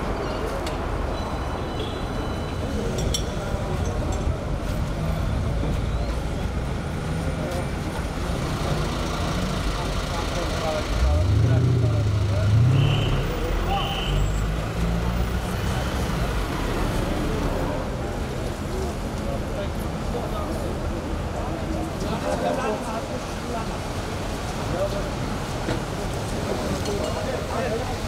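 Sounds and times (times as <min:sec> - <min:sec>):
short high beeps: 0:01.1 - 0:02.7.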